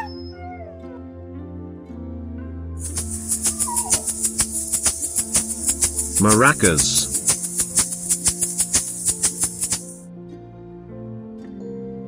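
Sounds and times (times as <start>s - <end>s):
dog's short high call: 0.0s - 0.5s, 2.9s - 5.8s
background music: 0.0s - 12.0s.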